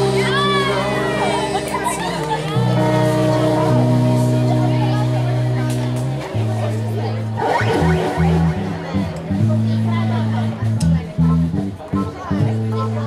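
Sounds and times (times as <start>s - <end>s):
low bass notes: 0.0s - 13.0s
small live band playing: 0.0s - 13.0s.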